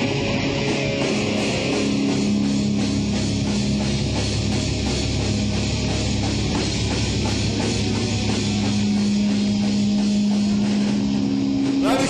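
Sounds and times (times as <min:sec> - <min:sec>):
distorted electric guitars: 0:00.0 - 0:12.0
drum kit: 0:00.0 - 0:12.0.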